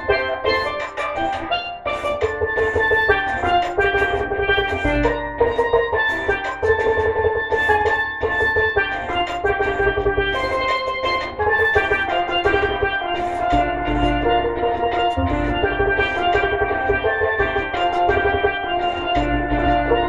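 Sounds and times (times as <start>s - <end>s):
bass and drum backing: 0.0s - 20.0s
steel pan melody: 0.0s - 20.0s.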